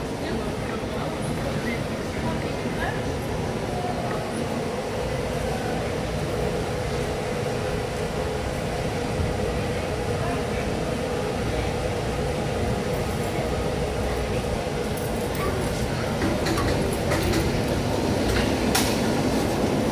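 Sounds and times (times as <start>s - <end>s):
distant voices murmuring: 0.0s - 19.9s
steady mechanical hum: 0.0s - 19.9s.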